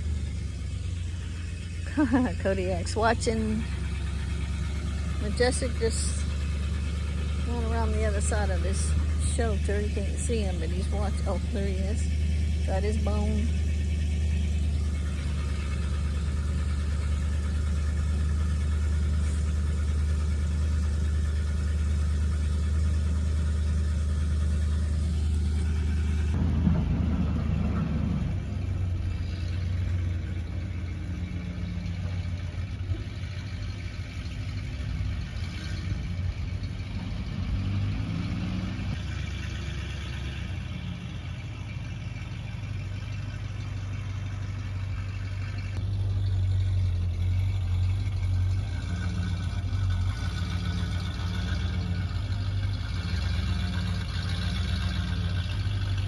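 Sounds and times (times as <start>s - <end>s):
truck engine running: 0.0s - 56.0s.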